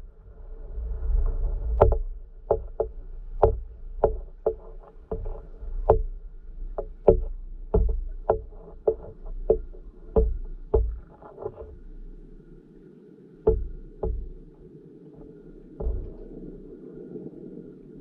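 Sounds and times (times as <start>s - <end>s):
low rumble of moving water: 0.0s - 18.0s
underwater clicks and knocks: 1.2s - 12.7s, 13.4s - 16.8s.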